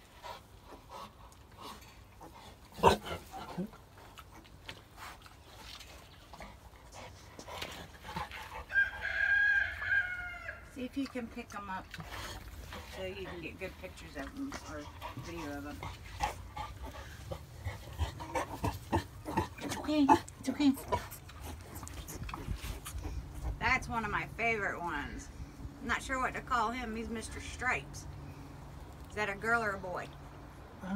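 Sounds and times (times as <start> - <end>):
rooster crowing: 8.7 - 10.7.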